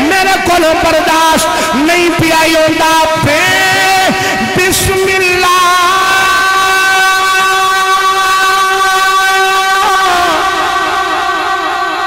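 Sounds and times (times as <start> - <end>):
man singing long note: 0.0 - 12.0.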